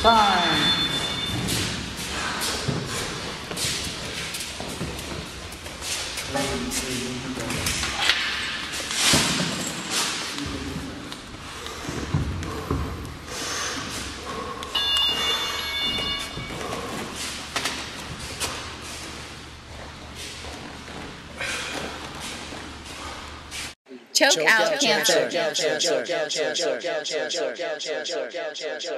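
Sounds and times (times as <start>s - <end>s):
high ringing tone: 0.0s - 1.7s, 14.7s - 16.6s
voices in gym: 0.0s - 20.6s, 23.9s - 28.9s.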